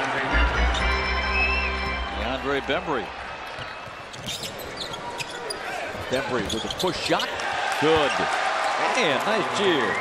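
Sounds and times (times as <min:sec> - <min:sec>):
crowd noise: 0:00.0 - 0:10.0
sneaker squeaks: 0:03.5 - 0:07.4.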